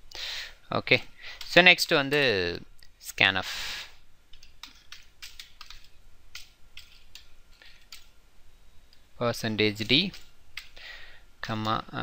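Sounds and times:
computer keyboard typing: 4.3s - 8.1s, 10.1s - 10.8s.

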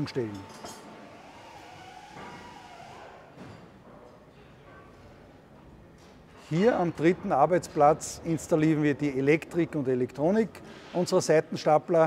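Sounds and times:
production hall background noise: 0.0s - 12.0s.

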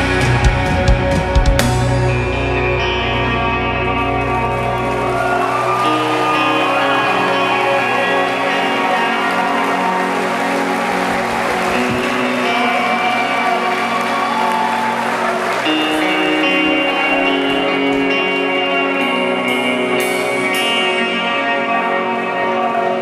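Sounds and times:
electric guitar sustained chords: 0.0s - 23.0s
live rock band playing: 0.0s - 23.0s.

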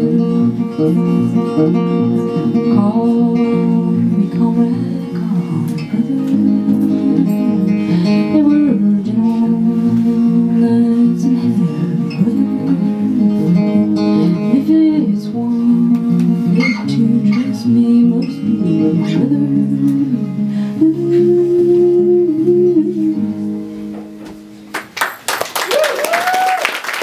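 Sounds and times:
woman singing slow melody: 0.0s - 23.8s
acoustic guitar: 0.0s - 25.6s.

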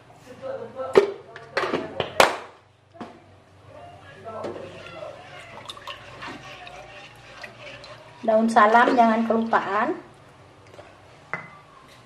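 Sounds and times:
spatula scraping wok: 4.5s - 10.1s
liquid sloshing: 4.6s - 10.1s.

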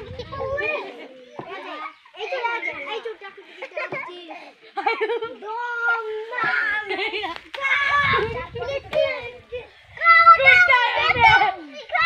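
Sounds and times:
children shouting while playing: 0.0s - 4.2s, 5.4s - 12.0s.

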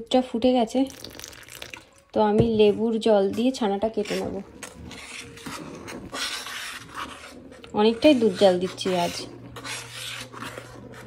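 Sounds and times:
metal spatula scraping a pan: 2.5s - 11.0s.

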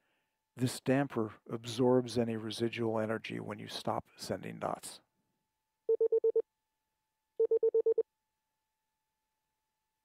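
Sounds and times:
morse code dot beeps: 5.9s - 6.4s, 7.4s - 8.0s.

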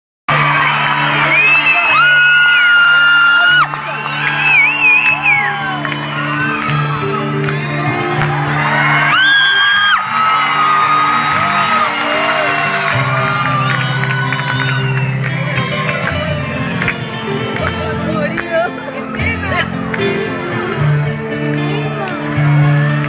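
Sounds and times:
audience cheering and whistling: 0.3s - 23.0s
folk band playing chords: 0.3s - 23.0s.

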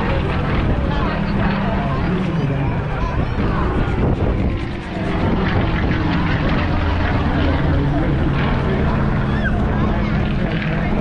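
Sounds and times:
background voices: 0.0s - 11.0s
plane engine droning overhead: 0.0s - 11.0s.

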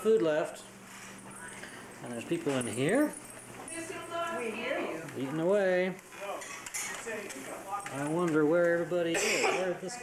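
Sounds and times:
background chatter: 0.6s - 10.0s
cutlery clinking on plates: 6.3s - 7.2s.

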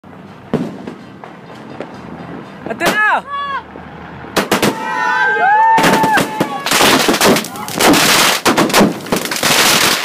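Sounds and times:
fireworks bang: 0.5s - 1.1s, 4.4s - 4.9s, 5.7s - 10.0s.

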